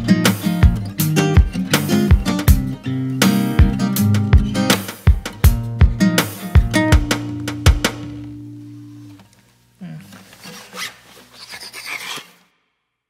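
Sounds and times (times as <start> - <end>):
acoustic guitar strums: 0.0 - 9.2
rough scratchy rubbing: 10.0 - 12.4.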